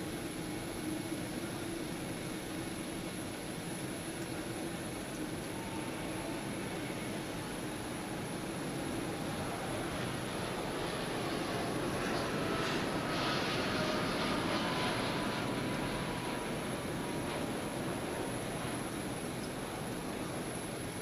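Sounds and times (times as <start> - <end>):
jet engine hum and rush: 0.0 - 21.0.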